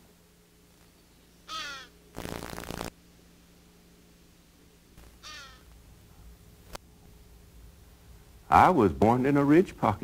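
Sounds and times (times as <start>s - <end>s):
short bird call: 5.2s - 5.7s.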